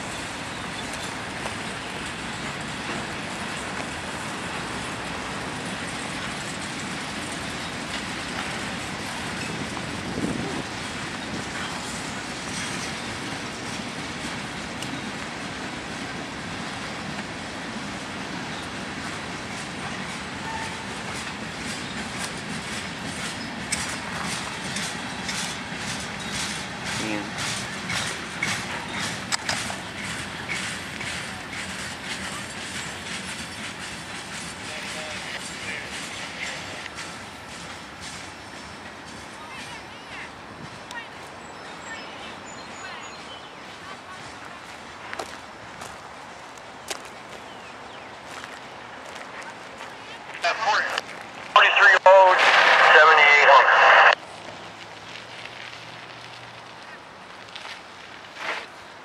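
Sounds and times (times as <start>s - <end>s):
wheels clacking over rail joints: 0.0s - 39.9s
train wheels rumbling on rail: 0.0s - 51.6s.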